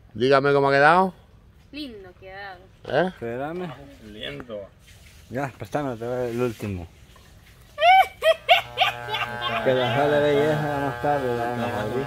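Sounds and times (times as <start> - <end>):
electric hair clippers buzzing: 8.4 - 12.0.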